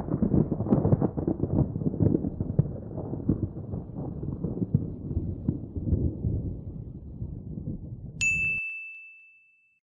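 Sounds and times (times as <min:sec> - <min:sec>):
high bell-like ding: 0:08.2 - 0:09.8.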